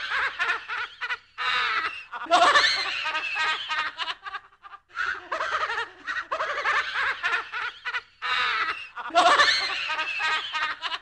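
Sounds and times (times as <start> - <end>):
spooky horror laugh: 0.0 - 11.0.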